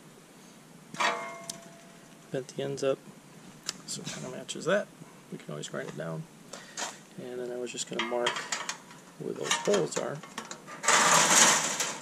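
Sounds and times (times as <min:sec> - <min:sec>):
metal bracket scraping on panel: 0:09.4 - 0:12.0.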